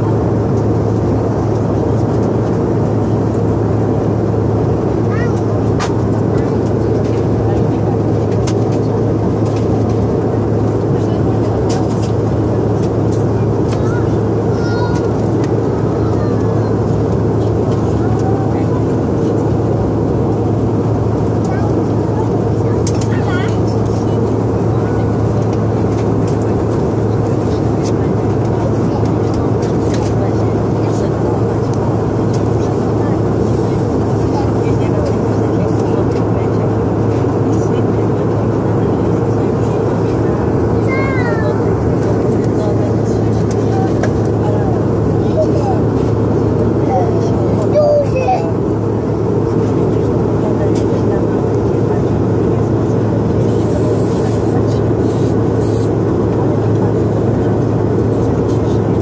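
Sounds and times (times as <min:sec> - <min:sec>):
airliner cabin engine drone: 0:00.0 - 0:59.0.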